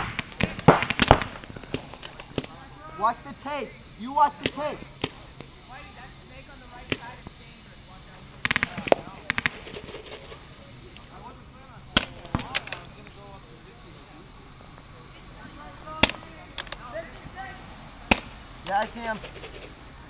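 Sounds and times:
paintball markers firing: 0.0s - 2.6s, 4.4s - 5.5s, 6.9s - 7.2s, 8.4s - 11.1s, 12.0s - 13.2s, 16.0s - 16.8s.

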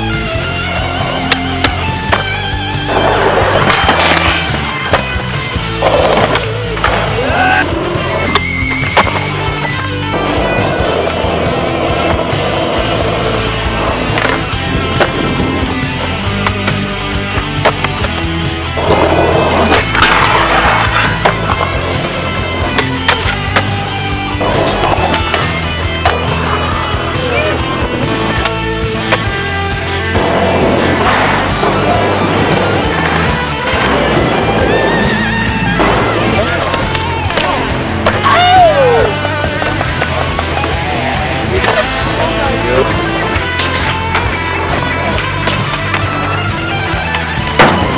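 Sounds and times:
loud rock music with guitar: 0.0s - 47.9s
skateboard wheels rolling on concrete: 0.0s - 47.9s
skateboard clacks: 0.6s - 29.4s, 30.1s - 47.9s.

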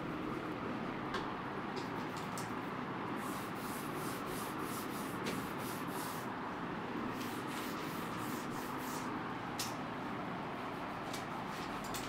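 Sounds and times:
hand rubbing on chalkboard: 3.2s - 6.3s, 7.2s - 9.1s.

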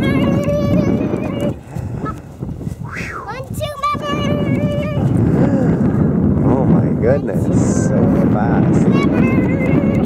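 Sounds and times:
wind noise: 0.0s - 10.0s.

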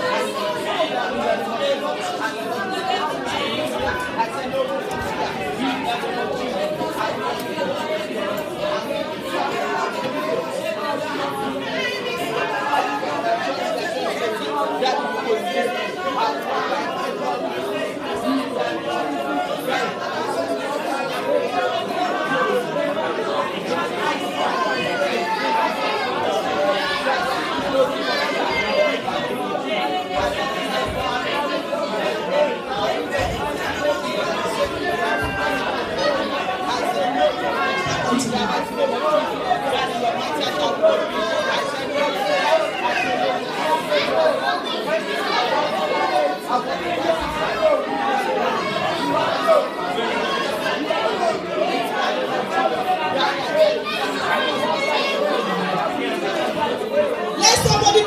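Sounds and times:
congregation praying aloud: 0.0s - 58.0s.

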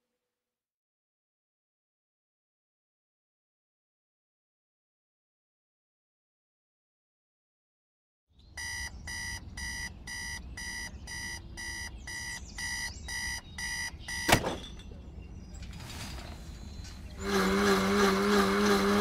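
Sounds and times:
street noise: 8.4s - 19.0s
electronic beeping: 8.6s - 14.4s
vehicle engine running: 16.9s - 19.0s.

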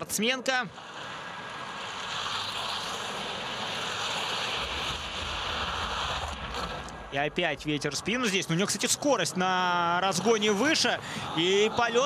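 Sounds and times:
skis hissing on tracks: 0.8s - 7.1s.

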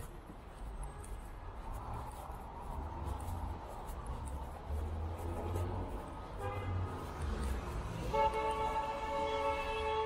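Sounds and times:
low traffic rumble: 0.0s - 10.0s
car horn honking: 6.4s - 6.8s, 8.0s - 10.0s.

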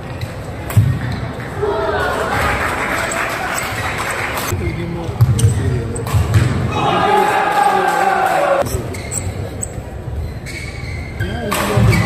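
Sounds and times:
voices of players and onlookers: 0.0s - 12.0s.

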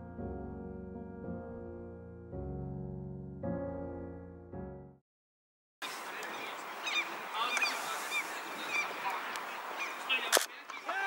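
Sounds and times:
birds calling: 5.8s - 11.0s
outdoor background hiss: 5.8s - 11.0s.

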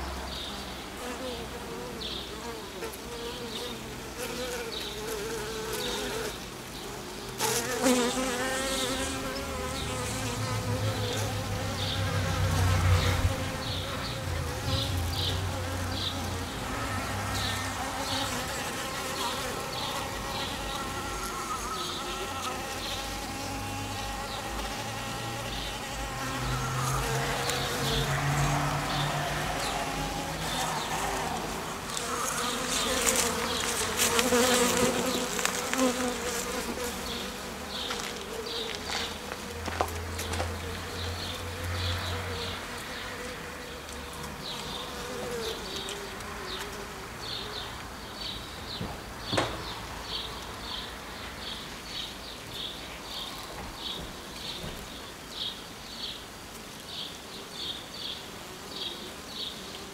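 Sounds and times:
honeybees buzzing: 0.0s - 59.9s.

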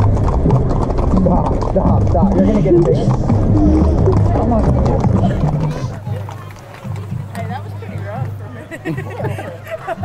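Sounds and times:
indistinct voices: 0.0s - 10.0s
music: 5.8s - 10.0s.

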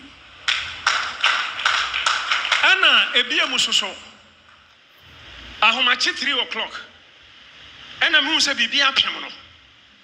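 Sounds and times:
hand claps: 0.4s - 3.7s.

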